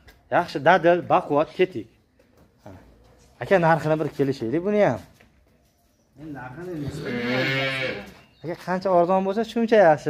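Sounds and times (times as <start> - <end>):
cow mooing: 6.9 - 8.2.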